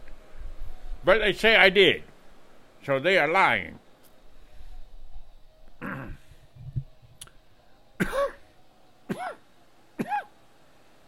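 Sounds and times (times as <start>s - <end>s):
man clearing his throat: 5.8s - 6.2s, 8.0s - 8.4s
faint click: 7.2s - 7.4s.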